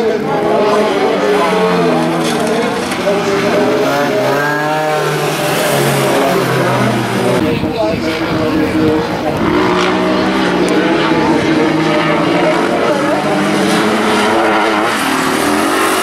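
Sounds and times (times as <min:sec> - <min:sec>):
racing car engines revving: 0:00.0 - 0:16.0.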